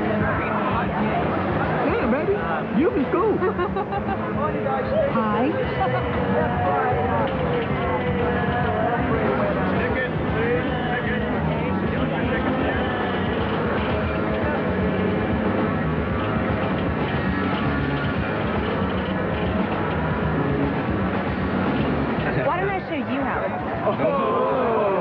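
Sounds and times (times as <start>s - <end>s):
voice: 0.0s - 13.3s
background music: 0.0s - 25.0s
crowd chatter: 0.0s - 25.0s.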